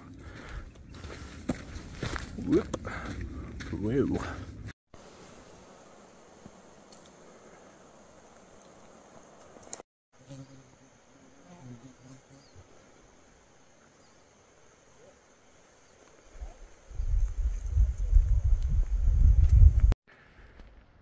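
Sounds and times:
flying insect buzzing: 0:04.9 - 0:18.4
outdoor background hiss: 0:05.0 - 0:17.5.

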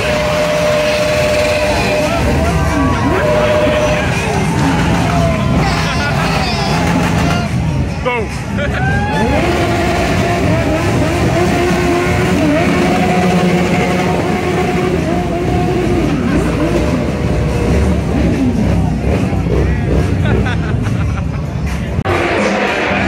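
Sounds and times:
motorcycle engines revving: 0:00.0 - 0:23.0.

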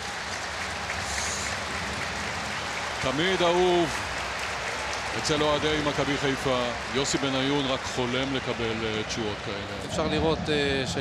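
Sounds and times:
stadium crowd applauding: 0:00.0 - 0:11.0.

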